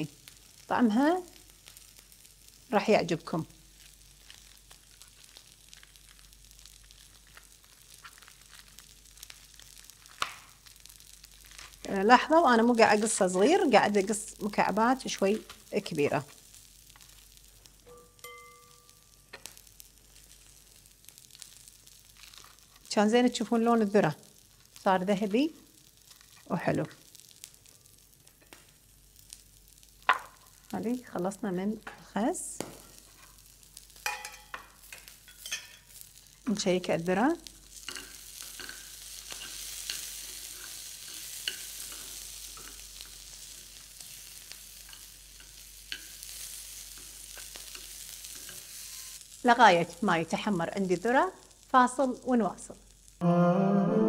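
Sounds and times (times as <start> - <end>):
corn kernels sizzling in pan: 0.0 - 53.2.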